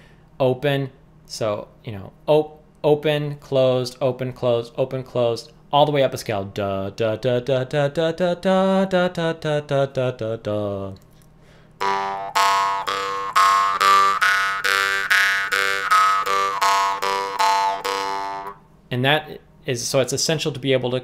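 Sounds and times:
jaw harp plucked over drone: 11.8 - 18.6.

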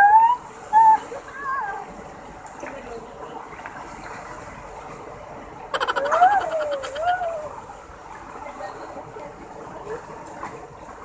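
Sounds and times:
rapid rattling with voice-like tone: 5.8 - 7.4.

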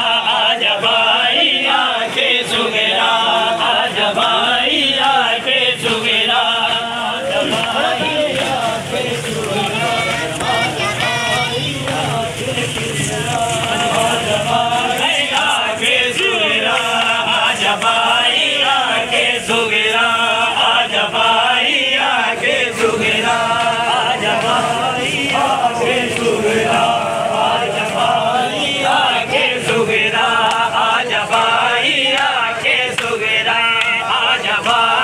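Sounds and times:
men chanting a lament in unison: 0.0 - 35.0.

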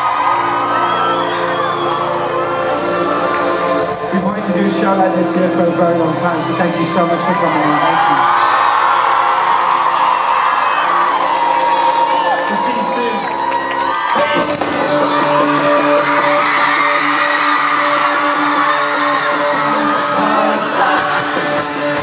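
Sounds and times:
concert crowd cheering: 0.0 - 22.0
live rock band playing: 14.1 - 22.0.

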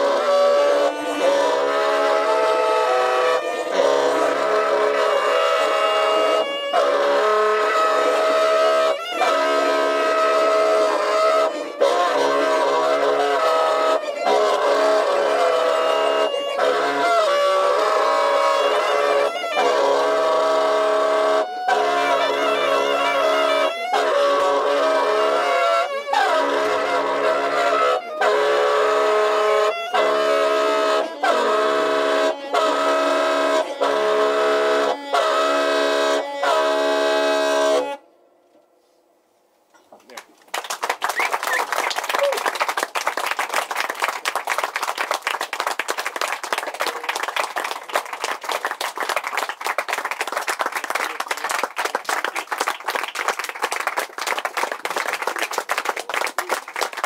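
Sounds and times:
saxophones holding long notes: 0.0 - 38.2.

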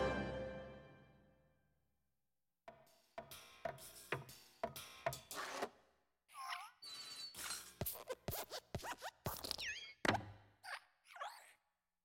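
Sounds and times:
short falling squeaks: 6.8 - 7.7
creaky joint squeaks: 6.8 - 8.2.

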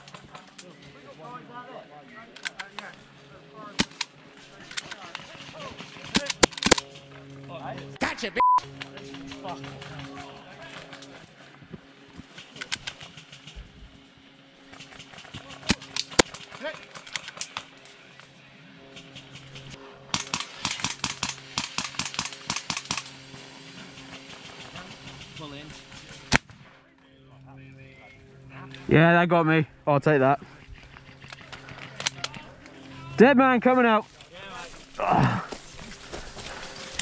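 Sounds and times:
airsoft gunfire: 20.1 - 23.1.

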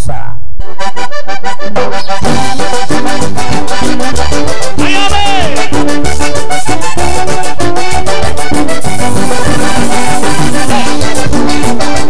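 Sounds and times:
button accordion chords: 0.6 - 12.0
band with bass and percussion: 2.2 - 12.0.

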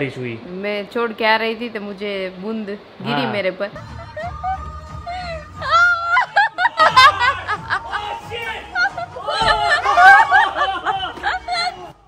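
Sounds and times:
high-pitched laughter: 3.8 - 12.0.

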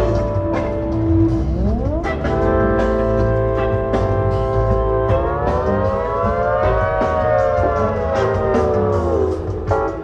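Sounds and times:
bass guitar: 0.0 - 10.0
held chord gliding in pitch: 0.0 - 10.0.

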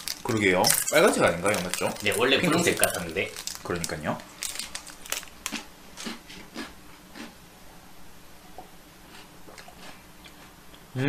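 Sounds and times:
biscuit being bitten and chewed: 0.0 - 7.4.

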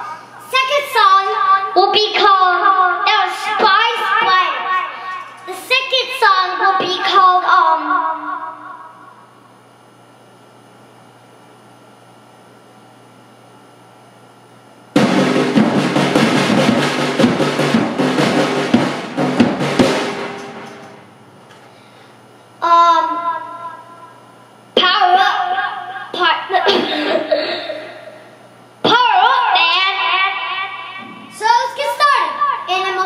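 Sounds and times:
fast drum hits: 15.0 - 21.1
cymbals ringing: 15.0 - 21.2.

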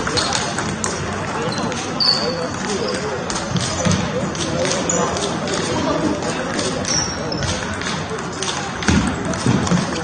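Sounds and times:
brief high squeak: 2.0 - 3.0.

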